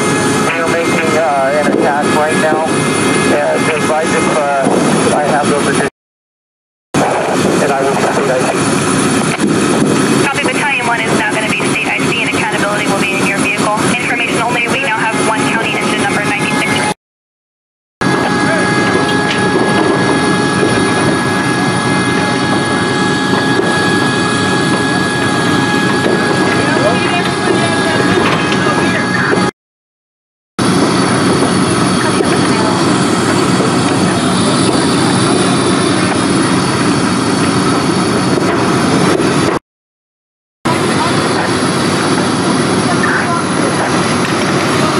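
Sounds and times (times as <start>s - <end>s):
fire engines running: 0.0s - 5.9s, 7.0s - 17.0s, 18.0s - 29.5s, 30.6s - 39.6s, 40.7s - 44.9s
people talking: 0.5s - 2.7s, 3.3s - 5.9s, 7.0s - 8.7s, 10.2s - 17.0s, 18.1s - 19.5s, 26.5s - 29.5s, 32.0s - 33.0s, 40.7s - 44.9s.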